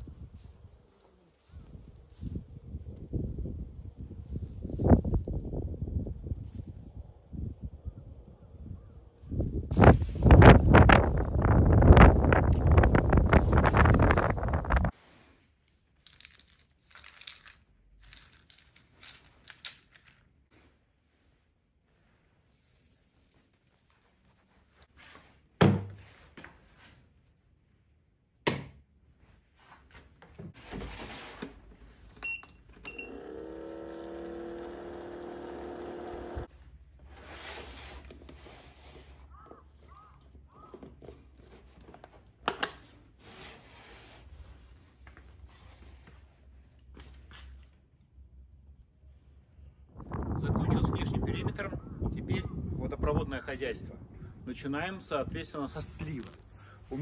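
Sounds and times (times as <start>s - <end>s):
short faint beeps: 32.2s - 33.2s.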